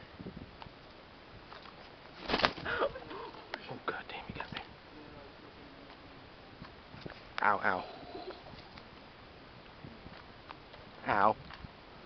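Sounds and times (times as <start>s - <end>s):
rooster wing flapping: 2.1s - 3.0s.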